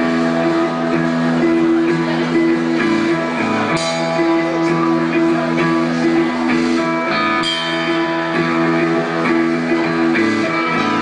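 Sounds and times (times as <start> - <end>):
electric guitar chords: 0.0 - 11.0
low bass line: 0.0 - 11.0.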